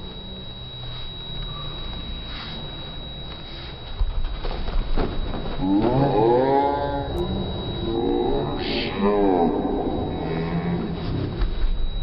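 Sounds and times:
thin steady high tone: 0.0 - 12.0
slowed-down human voices: 5.6 - 11.4.

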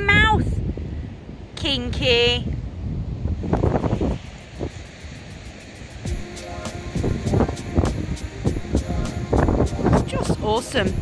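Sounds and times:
wind buffeting microphone: 0.0 - 11.0
held music notes: 4.6 - 11.0
music with ticking beat: 4.6 - 11.0.

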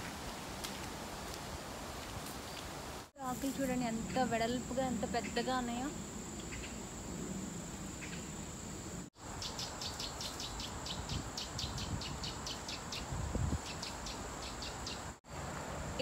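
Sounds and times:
rapid insect chirps: 2.4 - 15.2
insect high-pitched drone: 3.8 - 13.1.

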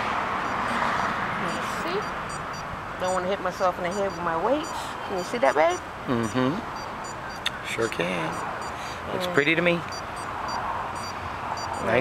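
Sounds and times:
short high beeps: 9.9 - 12.0.

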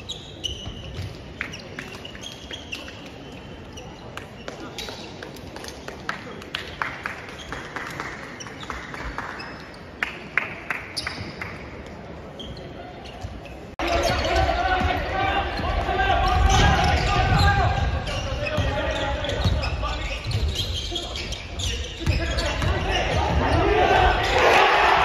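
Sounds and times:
ball bouncing on wooden court: 0.6 - 2.0, 21.6 - 23.7
players calling and shouting: 12.9 - 25.0.

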